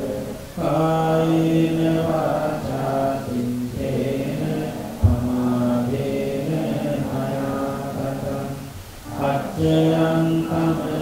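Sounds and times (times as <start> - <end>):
monk chanting into a microphone: 0.0 - 11.0.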